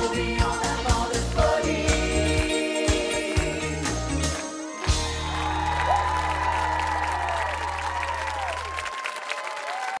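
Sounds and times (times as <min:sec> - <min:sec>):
audience applause and cheering: 0:03.7 - 0:10.0.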